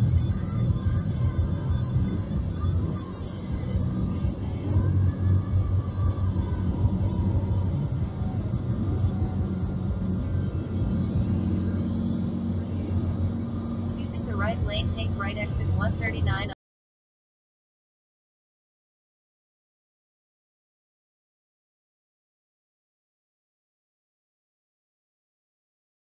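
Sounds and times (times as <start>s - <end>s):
car cabin drone: 0.0s - 16.6s
faint radio voices or music: 0.0s - 16.6s.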